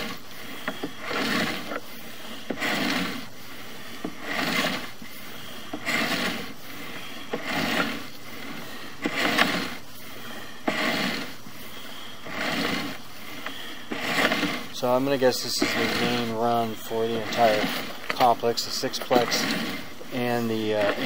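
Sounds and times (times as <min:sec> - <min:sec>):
cable scraping rub: 0:00.0 - 0:21.0.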